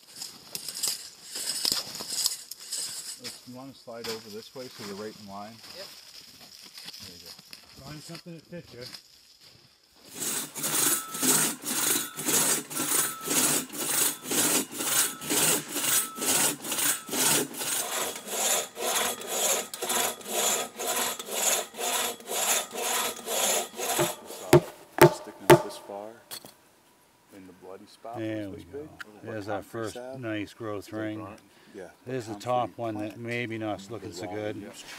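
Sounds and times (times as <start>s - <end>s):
crosscut saw cutting wood: 10.1s - 26.0s
sharp knocks: 23.9s - 26.0s.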